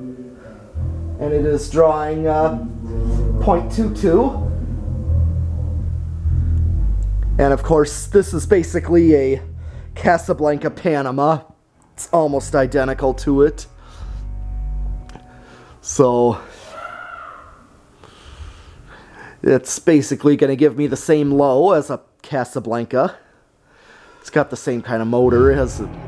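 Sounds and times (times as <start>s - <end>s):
soft breath: 18.0s - 19.4s, 23.3s - 24.2s.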